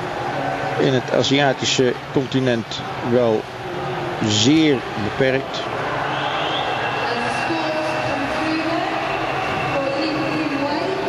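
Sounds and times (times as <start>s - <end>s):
indoor crowd murmur: 0.0s - 11.0s.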